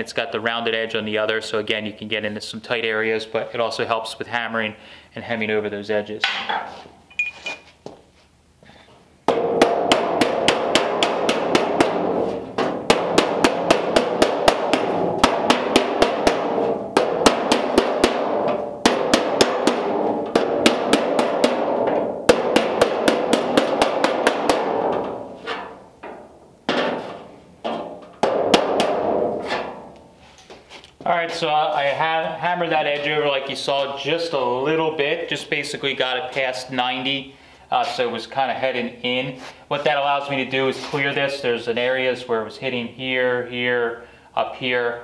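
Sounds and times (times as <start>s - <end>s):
hammer striking sheet metal: 9.3s - 30.0s.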